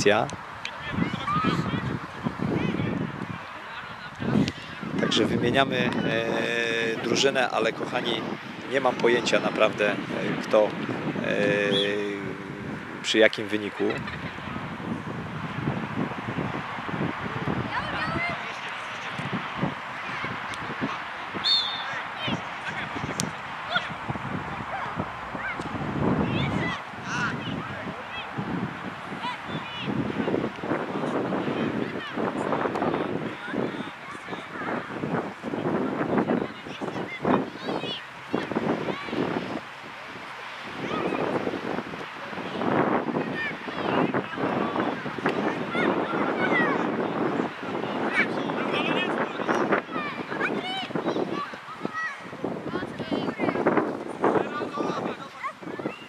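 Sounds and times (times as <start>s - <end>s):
adult spectators' voices: 0.0s - 56.0s
wind buffeting microphone: 0.0s - 56.0s
children shouting: 0.9s - 1.9s, 19.6s - 28.5s, 42.2s - 48.7s, 49.8s - 52.5s.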